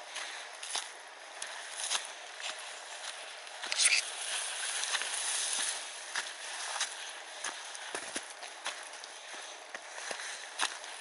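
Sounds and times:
dry grass rustling: 0.0s - 11.0s
footsteps on dry leaves: 0.0s - 11.0s.

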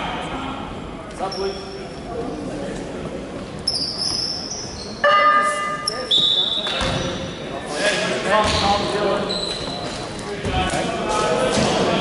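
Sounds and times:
voices in echoing hall: 0.0s - 12.0s
high steady tone: 5.0s - 6.0s
basketball bouncing: 8.4s - 8.7s.

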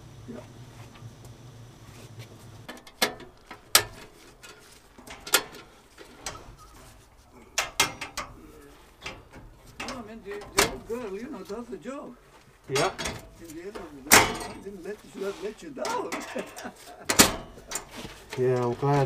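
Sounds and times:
low steady hum: 0.0s - 19.0s
metallic clicks and knocks: 2.7s - 6.4s, 7.5s - 11.1s, 15.9s - 19.0s.

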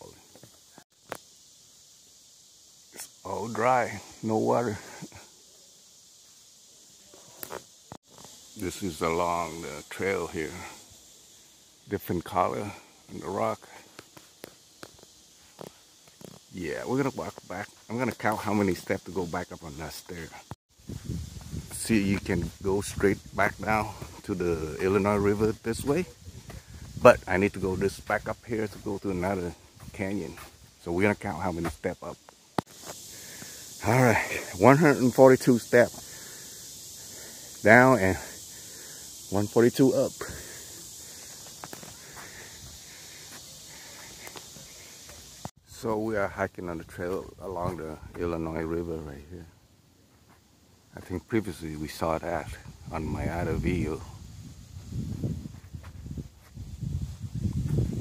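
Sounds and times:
steady hiss: 0.0s - 58.0s
footsteps on dirt trail: 13.7s - 17.9s, 20.7s - 24.4s, 25.1s - 30.9s, 31.5s - 33.8s, 40.1s - 45.5s, 54.2s - 58.0s.

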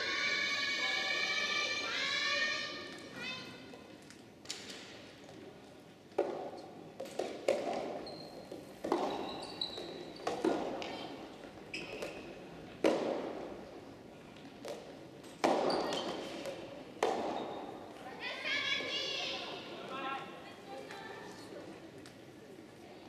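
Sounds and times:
shoe squeaks on wooden floor: 8.0s - 10.3s, 11.7s - 12.3s, 15.6s - 16.3s
tennis ball struck by rackets: 8.8s - 9.2s.

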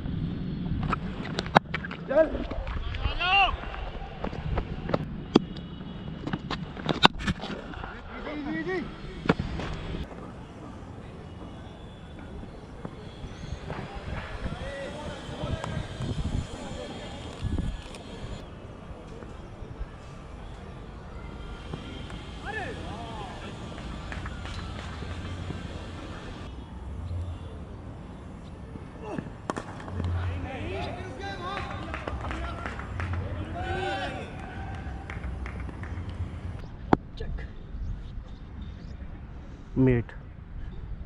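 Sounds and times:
steady outdoor hiss: 0.0s - 41.0s
players shouting: 13.0s - 17.4s, 20.4s - 26.5s, 28.9s - 36.3s.

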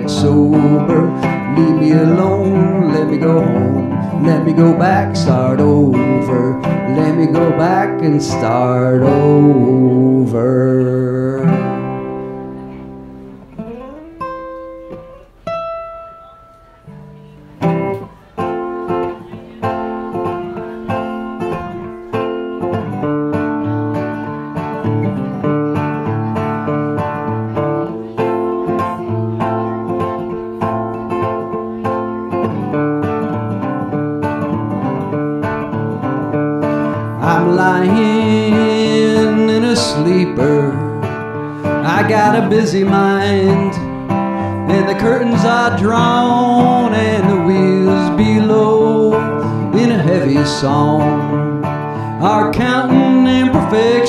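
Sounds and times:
resonator guitar playing: 0.0s - 54.0s.

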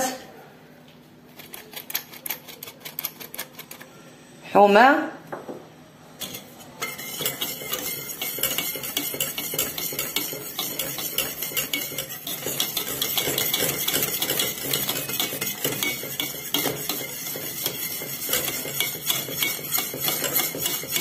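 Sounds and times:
utensil stirring in a metal pot: 6.2s - 21.0s.

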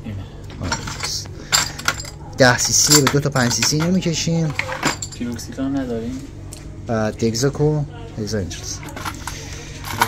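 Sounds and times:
glass ampoules clinking: 0.6s - 5.2s.

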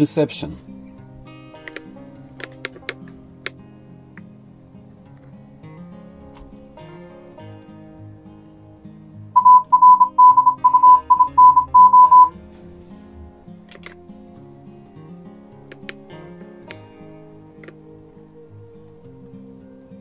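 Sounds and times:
quiet guitar music: 0.0s - 20.0s
morse code beeps: 9.4s - 12.3s.

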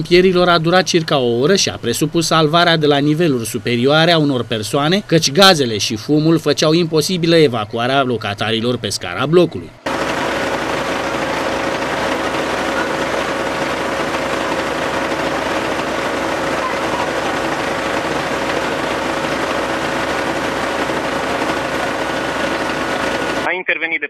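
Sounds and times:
faint steady whine: 0.0s - 24.0s
diesel engine running: 8.6s - 23.5s.

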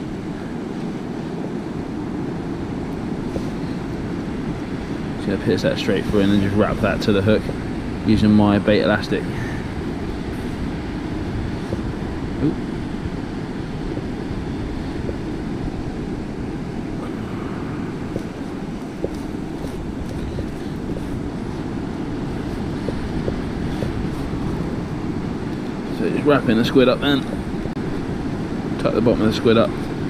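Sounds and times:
low rumbling background noise: 0.0s - 30.0s.

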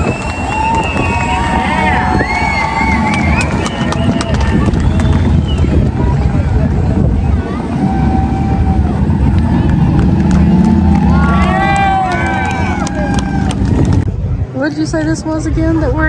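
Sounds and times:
crowd shouting and cheering: 0.0s - 14.1s
pickup engine running: 0.0s - 14.1s.

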